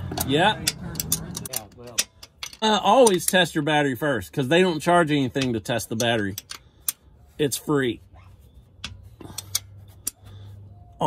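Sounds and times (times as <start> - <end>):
wrench clicking on bolt: 0.1 - 3.5, 5.4 - 7.0.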